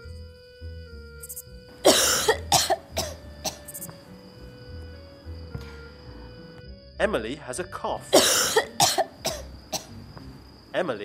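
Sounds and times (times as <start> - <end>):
soft background music: 0.0 - 11.0
woman coughing: 1.8 - 3.6, 8.1 - 9.9.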